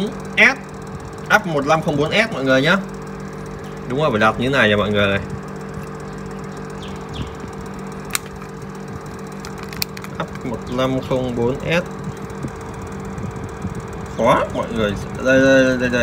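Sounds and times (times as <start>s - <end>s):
machine hum: 0.0s - 16.0s
sharp clicks: 8.0s - 8.6s, 9.4s - 10.2s.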